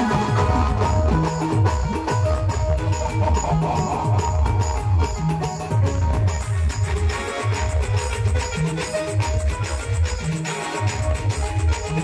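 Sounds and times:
loud band music over loudspeakers: 0.0s - 12.0s.

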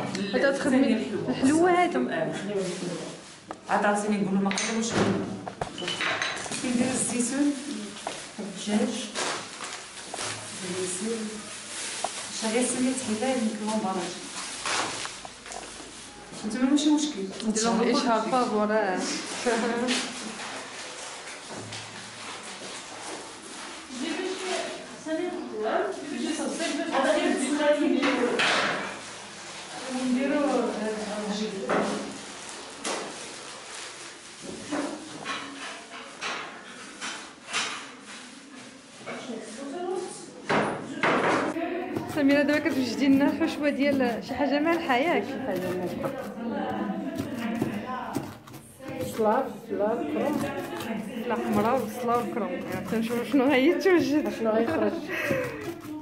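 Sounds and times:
plastic bags rustling: 2.2s - 4.2s, 6.4s - 17.3s, 18.5s - 24.8s, 32.0s - 34.7s, 41.6s - 56.0s
bowls and utensils clinking: 5.7s - 8.2s, 41.8s - 56.0s.

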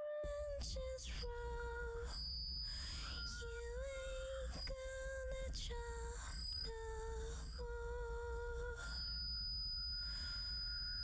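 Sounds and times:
thin high tone: 0.3s - 11.0s.

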